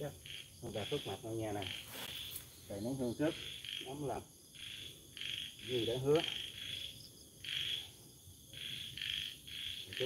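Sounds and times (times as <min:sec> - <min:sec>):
insects chirping in trills: 0:00.0 - 0:10.0.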